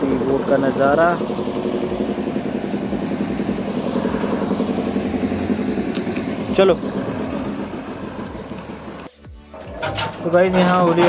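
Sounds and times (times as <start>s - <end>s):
boat diesel engine running: 0.0s - 11.0s.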